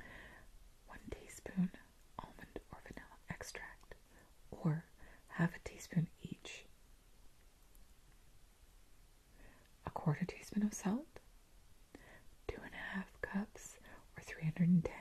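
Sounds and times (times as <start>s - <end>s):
woman whispering: 0.9s - 6.7s, 9.8s - 11.2s, 12.5s - 15.0s.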